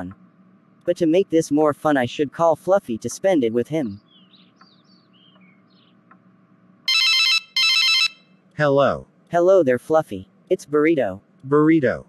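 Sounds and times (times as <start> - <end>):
telephone ringing electronic trill: 6.9 - 8.3.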